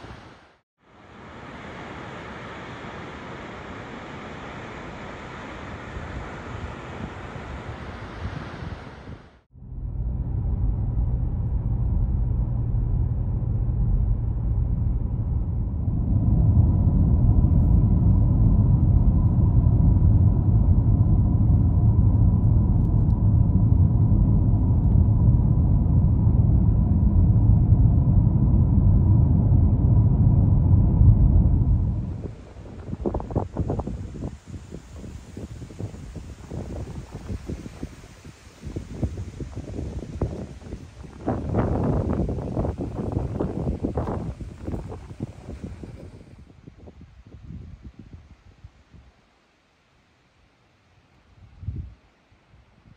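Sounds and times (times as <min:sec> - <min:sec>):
wind buffeting microphone: 0:05.8 - 0:49.1
car road and engine rumble: 0:09.4 - 0:46.5.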